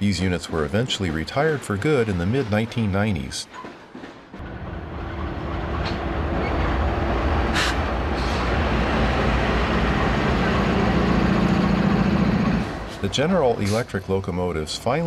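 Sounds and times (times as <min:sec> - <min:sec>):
locomotive engine drone: 0:04.4 - 0:15.0.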